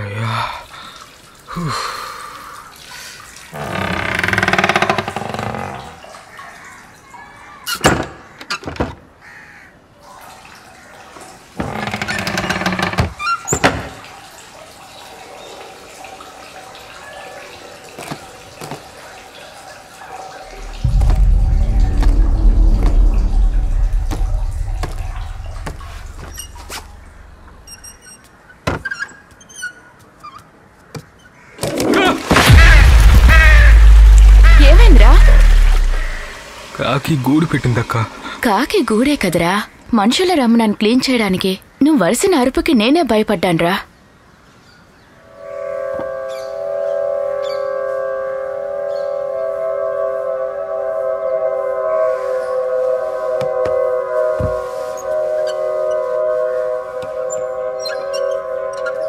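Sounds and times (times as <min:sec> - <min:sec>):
rising swells of noise: 0:20.5 - 0:27.7
deep low rumble: 0:20.5 - 0:27.8, 0:32.4 - 0:36.4.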